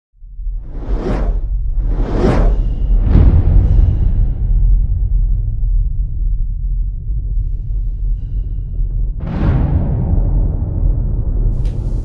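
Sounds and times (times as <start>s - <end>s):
deep low rumble: 0.2s - 12.0s
cinematic whoosh: 0.5s - 5.3s, 9.2s - 12.0s.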